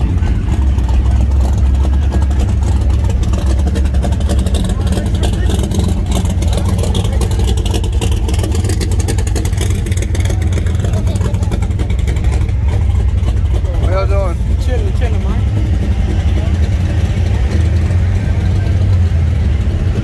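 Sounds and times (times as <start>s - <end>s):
car engines idling: 0.0s - 20.0s.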